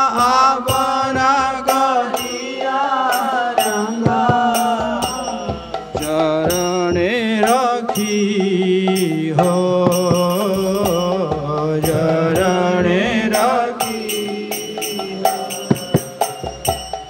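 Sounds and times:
man singing devotional song: 0.0 - 17.0
hand drum strokes: 0.1 - 17.0.

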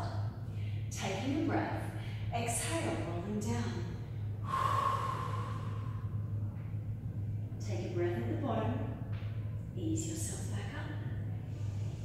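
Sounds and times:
low hum: 0.0 - 12.0
woman speaking: 0.9 - 4.0, 7.6 - 8.8, 9.8 - 11.1
woman exhaling: 4.4 - 6.2.

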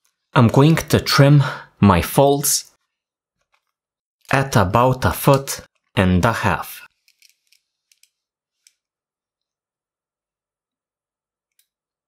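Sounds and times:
faint ticks and rustles of handling: 6.9 - 9.6.

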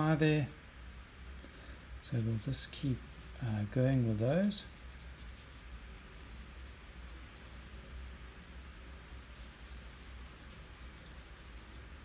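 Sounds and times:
low steady hum: 0.0 - 12.0
paintbrush bristles scratching paper: 2.1 - 8.5, 9.3 - 12.0.

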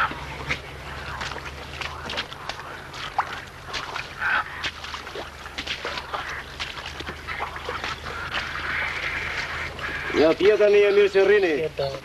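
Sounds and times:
duck-like fowl calling: 0.0 - 11.4
steady low hum: 0.0 - 11.8.

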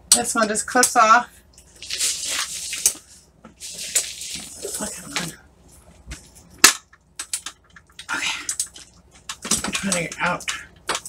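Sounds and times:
rustling handling noise: 1.4 - 6.6.

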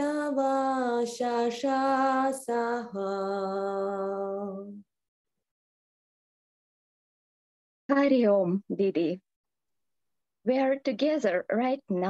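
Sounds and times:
woman singing unaccompanied: 0.0 - 4.9.

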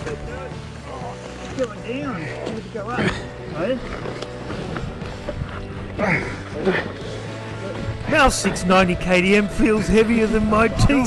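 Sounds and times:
background music: 0.0 - 11.0
men grunting and crying out: 5.8 - 8.6.

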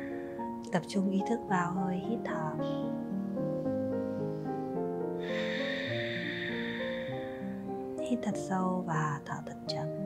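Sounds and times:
long breath exhaled: 0.0 - 0.6, 3.1 - 8.5
slow background music: 0.0 - 10.0.

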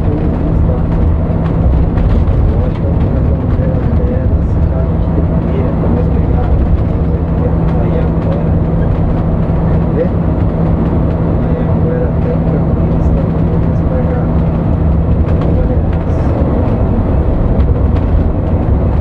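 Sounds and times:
bus engine and road rumble: 0.0 - 19.0.

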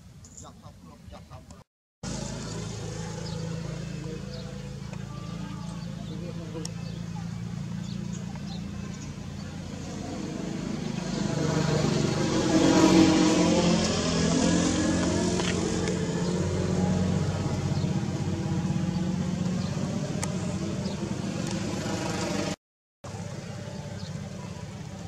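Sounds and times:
engine running steadily: 2.0 - 25.0
vehicle engine passing by: 2.0 - 25.0.

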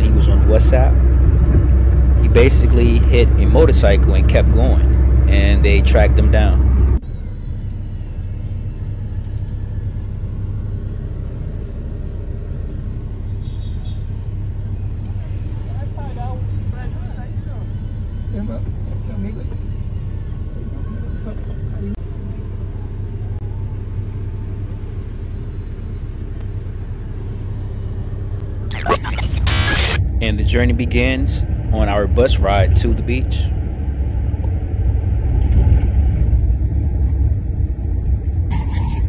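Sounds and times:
car engine idling: 0.0 - 35.4.

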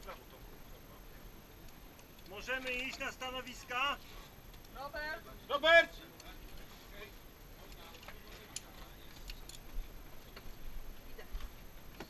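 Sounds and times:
metallic clicks of guns handled: 1.7 - 3.1, 7.7 - 10.5.

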